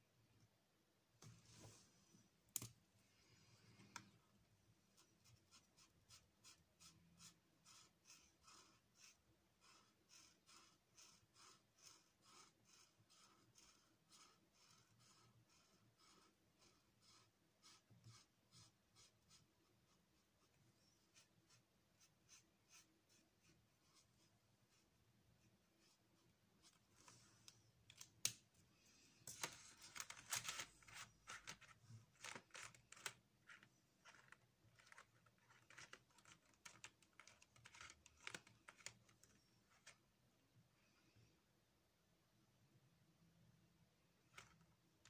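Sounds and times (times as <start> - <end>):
marker scratching on paper: 4.9 - 27.6.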